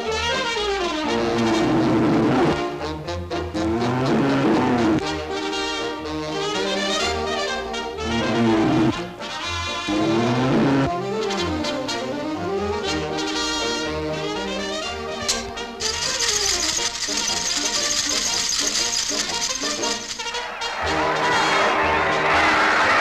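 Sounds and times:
brass orchestral cartoon music: 0.0 - 23.0
crowd noise: 19.5 - 23.0.

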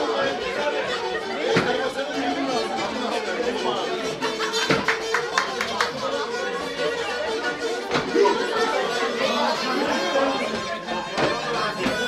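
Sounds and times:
crowd talking in a hall: 0.0 - 12.0.

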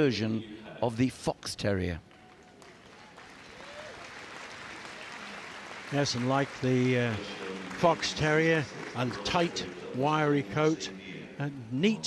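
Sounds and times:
audience applauding: 2.1 - 10.8.

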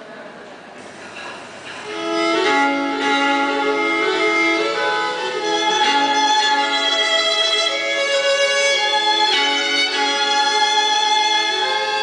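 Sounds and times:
violin slow melody: 1.8 - 12.0.

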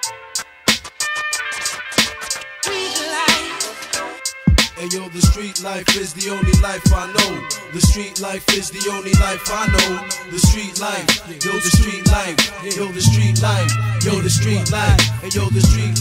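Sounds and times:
deep kick drums: 6.4 - 7.0, 11.8 - 12.2, 13.0 - 16.0
pitched sampled sounds bending: 13.0 - 16.0.

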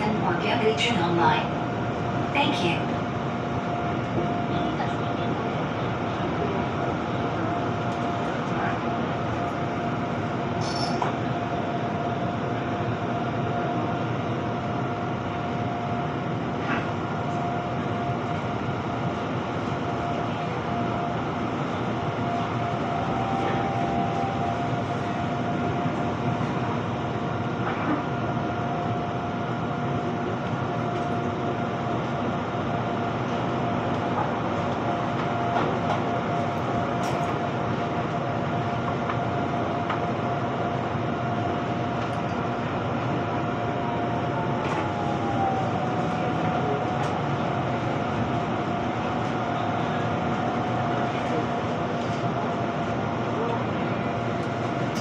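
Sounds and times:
train rumbling: 0.0 - 55.0.

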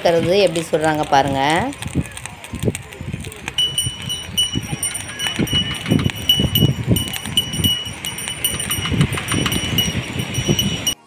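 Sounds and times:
air blower gusts: 1.7 - 11.0.

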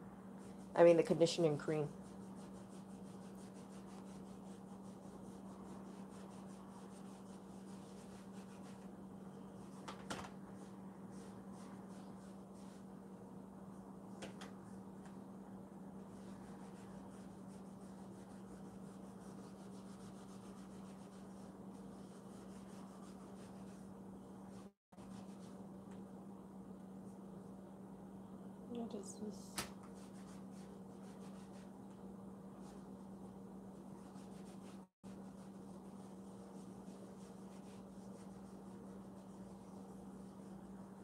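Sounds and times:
steady low hum: 0.0 - 41.0
cotton pad rubbing leather: 1.9 - 8.9, 16.2 - 23.9.

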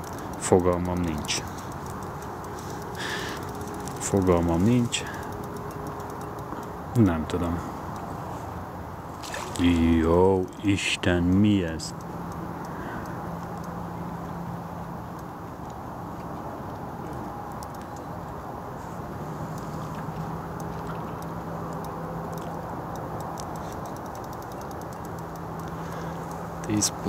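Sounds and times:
fishing reel ticking: 0.0 - 6.8, 19.5 - 27.0.

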